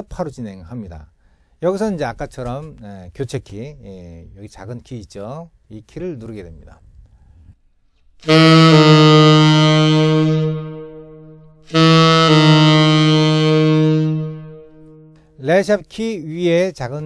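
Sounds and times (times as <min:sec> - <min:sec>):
tenor saxophone notes: 0:08.2 - 0:15.3.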